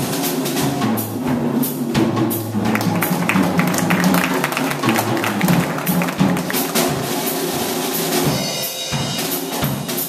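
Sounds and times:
drum kit and cymbals: 0:00.0 - 0:10.0.

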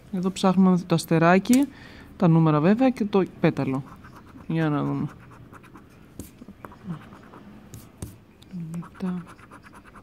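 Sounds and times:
coin scratching lottery ticket: 0:08.8 - 0:10.0.

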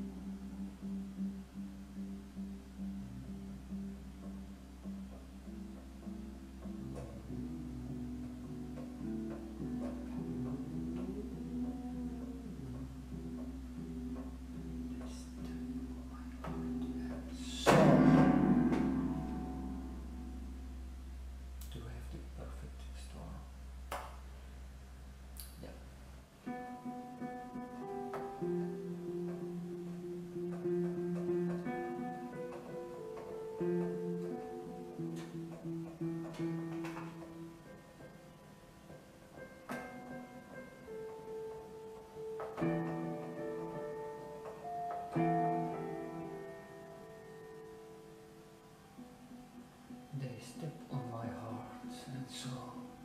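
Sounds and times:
keyboard chord ringing: 0:00.0 - 0:22.0, 0:26.4 - 0:53.0
low steady hum: 0:00.0 - 0:53.0.

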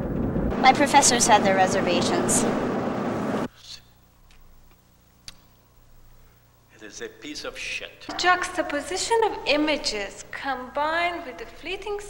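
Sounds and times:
faint low hum: 0:00.0 - 0:12.0
sharp click: 0:05.2 - 0:05.5.

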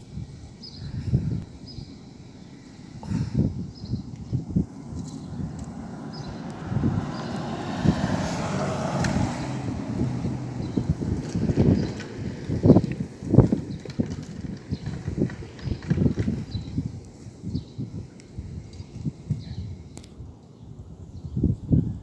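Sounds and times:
wind buffeting microphone: 0:00.0 - 0:22.0
car driving past: 0:04.5 - 0:16.0.

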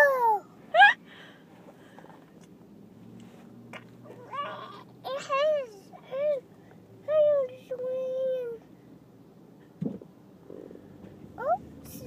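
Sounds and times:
toddler vocalizing: 0:04.2 - 0:06.4.

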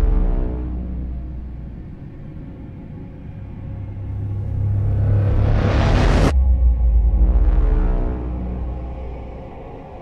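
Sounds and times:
low dark rumbling drone: 0:00.0 - 0:10.0.

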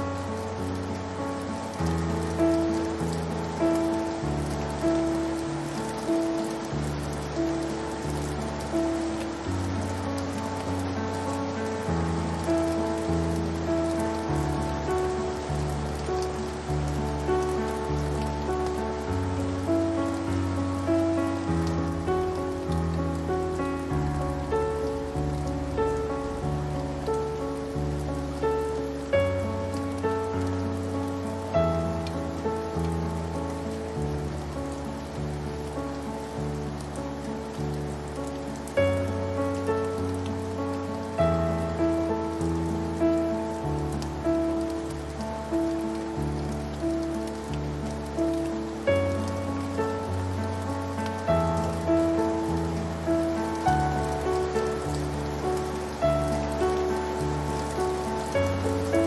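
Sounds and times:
rain falling on a surface: 0:00.0 - 0:59.0
slow gentle solo piano: 0:00.0 - 0:59.0.

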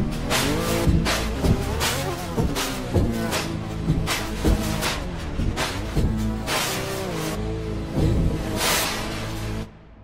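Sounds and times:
low synth bass: 0:00.0 - 0:10.0.

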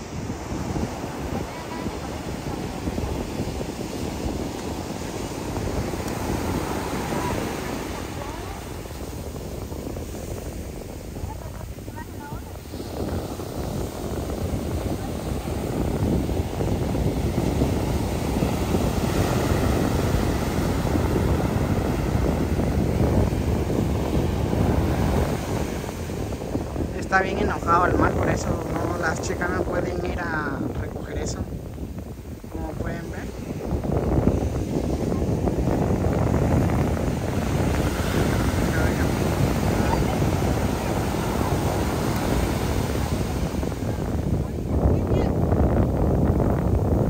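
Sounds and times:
rough surf breaking: 0:00.0 - 0:47.0
wind buffeting microphone: 0:00.0 - 0:47.0.

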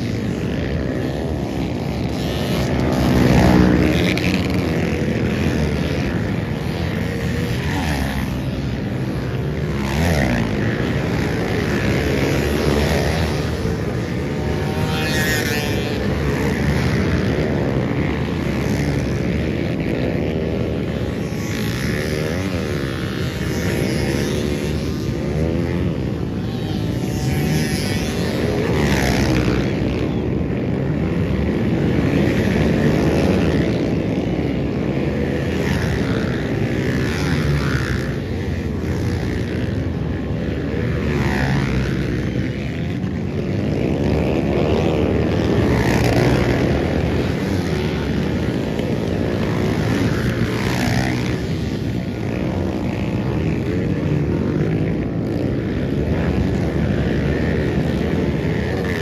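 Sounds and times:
dirt bike engines revving: 0:00.0 - 0:59.0
drone of engines: 0:00.0 - 0:59.0.

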